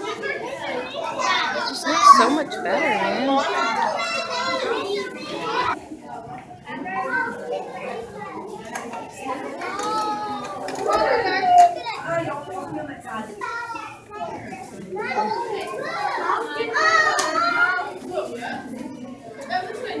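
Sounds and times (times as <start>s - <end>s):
young children chattering: 0.0s - 20.0s.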